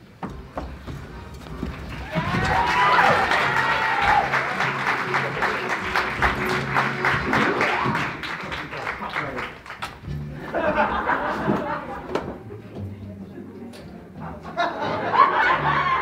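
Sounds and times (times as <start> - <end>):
music playing: 0.0 - 16.0
audience applauding: 1.5 - 10.0
audience whoops: 1.9 - 5.2.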